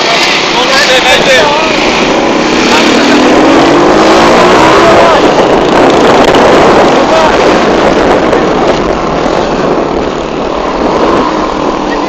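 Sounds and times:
motorcycle engine revving up: 0.0s - 12.0s
wind rush on microphone: 0.0s - 12.0s.

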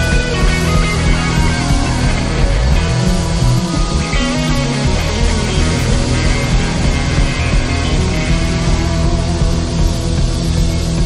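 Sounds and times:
live band playing up-tempo music: 0.0s - 11.0s.

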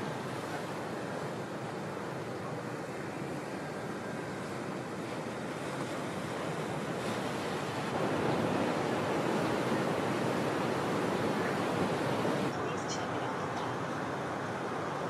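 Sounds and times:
ocean waves crashing: 0.0s - 15.0s.

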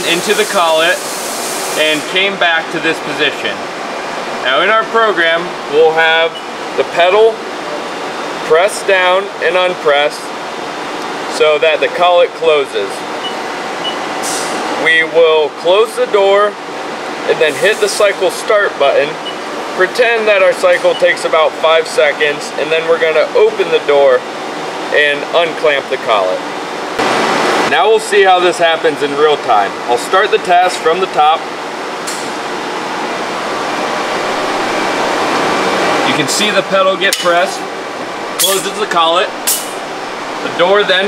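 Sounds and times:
machine shop ventilation noise: 0.0s - 41.0s.

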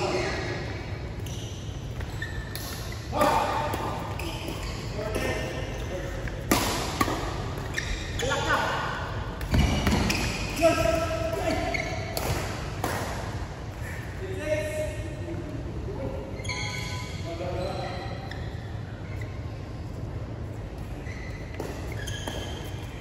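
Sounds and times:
shoes squeaking on court: 1.1s - 8.8s, 9.4s - 12.6s, 16.2s - 23.0s
rackets hitting shuttlecock: 2.0s - 7.7s, 11.4s - 13.4s.

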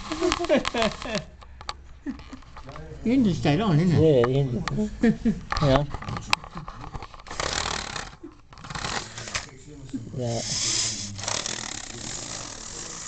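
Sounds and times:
model train whirring and rattling: 10.4s - 13.0s.

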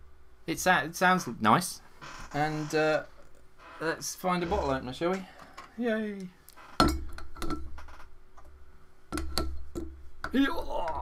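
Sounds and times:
glass bottle clicking and knocking: 9.1s - 10.0s.

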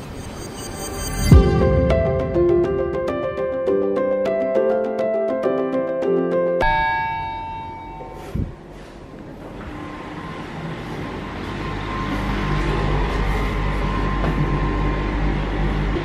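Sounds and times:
background music: 1.0s - 7.3s
lift humming with faint whine: 6.6s - 16.0s.

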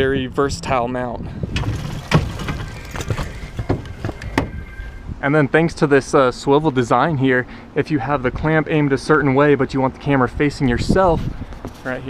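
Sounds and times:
microphone handling knocks and clicks: 1.5s - 4.8s.

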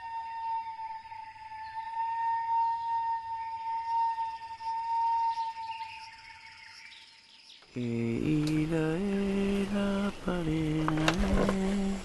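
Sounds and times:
birds chirping: 0.6s - 12.0s.

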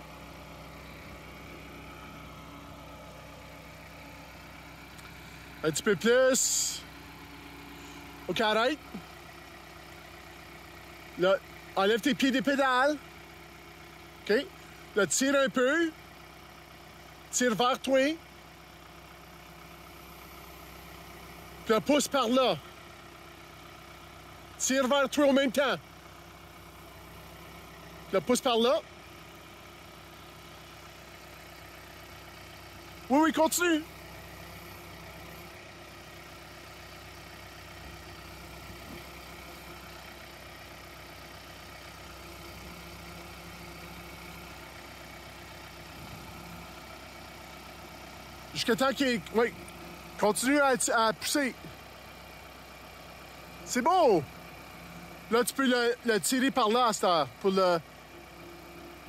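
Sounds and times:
tractor diesel engine idling: 0.0s - 59.0s.

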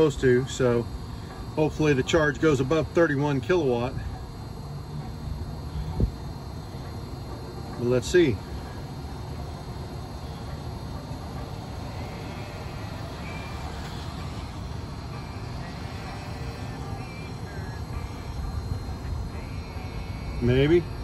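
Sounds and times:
low hum of charger cooling fans: 0.0s - 21.0s.

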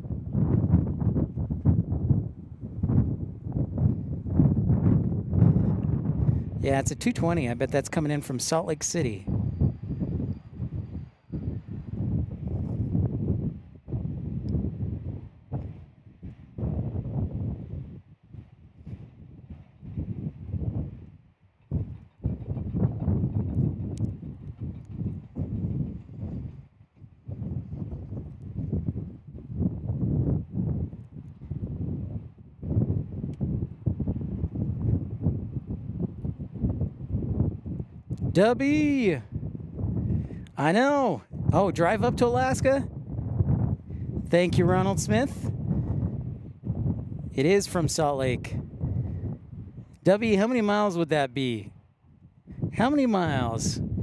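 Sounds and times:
gusty wind buffeting microphone: 0.0s - 54.0s.

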